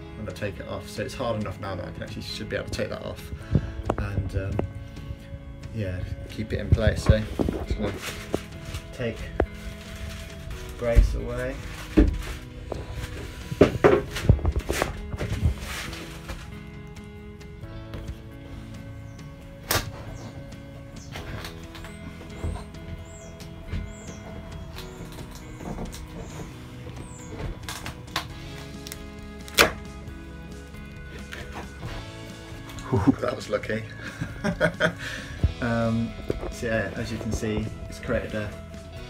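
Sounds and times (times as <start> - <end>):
background music: 0.0 - 39.0.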